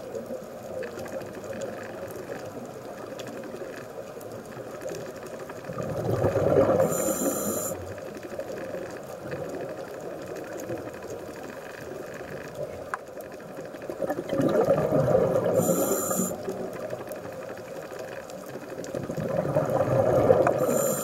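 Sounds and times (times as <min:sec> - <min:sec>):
muffled underwater noise: 0:00.0 - 0:21.0
exhaled bubbles underwater: 0:05.6 - 0:07.8, 0:13.8 - 0:17.4, 0:18.6 - 0:21.0
short high hiss: 0:06.9 - 0:07.8, 0:15.6 - 0:16.6.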